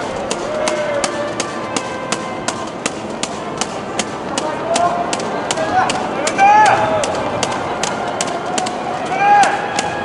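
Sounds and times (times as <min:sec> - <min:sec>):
crowd handclaps: 0:00.0 - 0:10.0.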